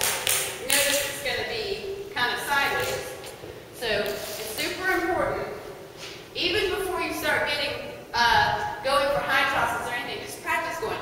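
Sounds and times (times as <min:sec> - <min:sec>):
woman speaking: 0:00.6 - 0:03.2, 0:03.8 - 0:05.7, 0:06.4 - 0:11.0.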